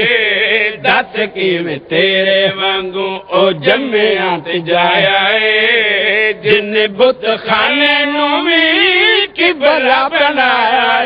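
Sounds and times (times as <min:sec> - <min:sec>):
man chanting into a microphone: 0:00.0 - 0:11.0.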